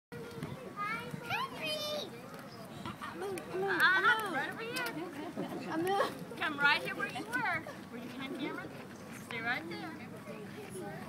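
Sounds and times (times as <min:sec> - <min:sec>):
children chattering and calling: 0:00.1 - 0:11.0.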